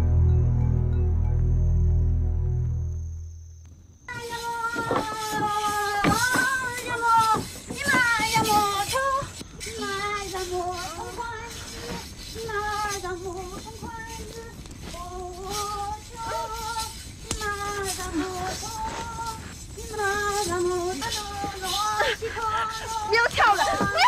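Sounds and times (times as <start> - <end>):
high-pitched voice singing: 4.1 - 24.0.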